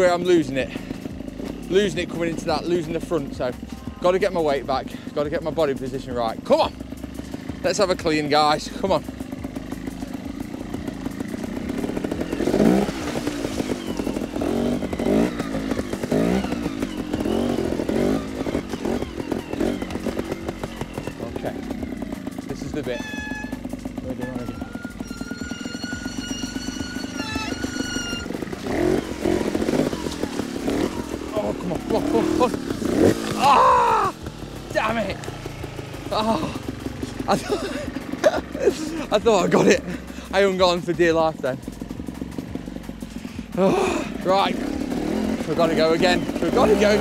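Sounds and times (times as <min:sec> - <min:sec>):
motorcycle engine revving: 0:00.0 - 0:47.0
water splashing: 0:12.7 - 0:14.1
high-pitched squeal: 0:22.5 - 0:34.1.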